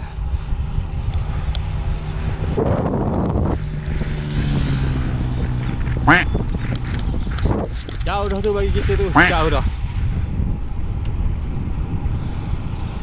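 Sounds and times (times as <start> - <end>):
motor vehicle passing: 0.0 - 13.0
tyres rumbling on tarmac: 0.0 - 13.0
wind buffeting microphone: 0.0 - 13.0.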